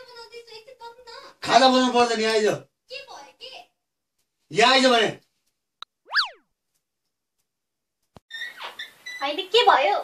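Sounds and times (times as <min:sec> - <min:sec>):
swooping cartoon tone: 0:06.1 - 0:06.4.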